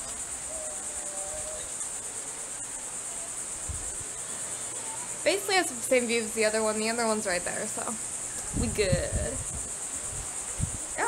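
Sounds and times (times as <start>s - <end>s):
insect chorus: 0.0s - 11.0s.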